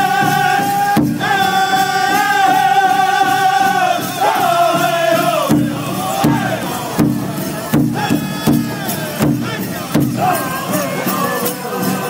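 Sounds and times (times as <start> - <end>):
steady drumbeat: 0.0 - 12.0
voices singing high melody: 0.0 - 12.0.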